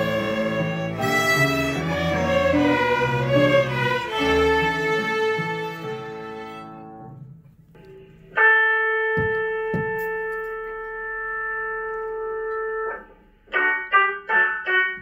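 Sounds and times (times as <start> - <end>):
violins playing short detached notes: 0.0 - 6.7
string orchestra bowed chord: 0.0 - 7.0.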